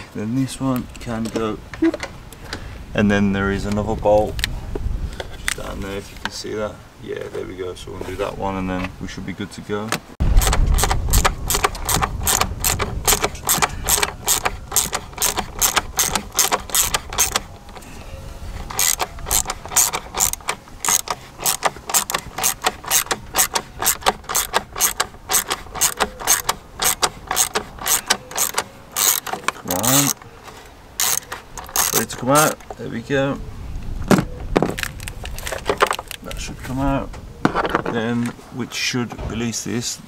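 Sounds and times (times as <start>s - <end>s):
socket ratchet clicking: 10.4s - 17.8s, 18.6s - 30.2s, 31.0s - 32.6s.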